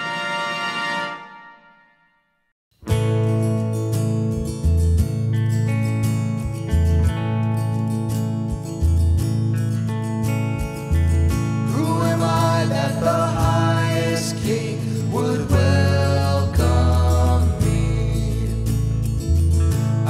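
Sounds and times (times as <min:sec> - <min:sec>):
live band playing worship song: 0:11.3 - 0:20.0
man singing lead vocal: 0:11.7 - 0:18.9.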